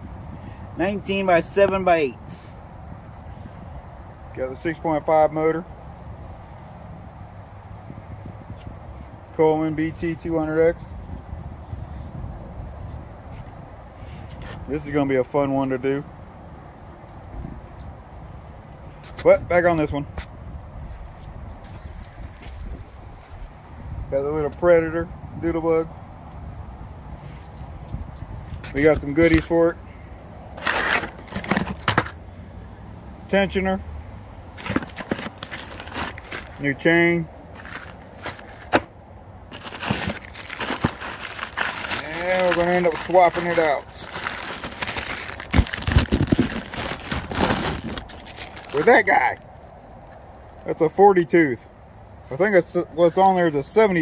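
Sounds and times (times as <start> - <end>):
wind buffeting microphone: 5.7 - 14.8, 17.0 - 30.6, 34.4 - 48.8
paper and cardboard crinkling: 30.6 - 32.1, 34.6 - 36.8, 37.5 - 38.9, 39.5 - 49.0
dull bumps: 34.6 - 36.6, 37.6 - 48.6.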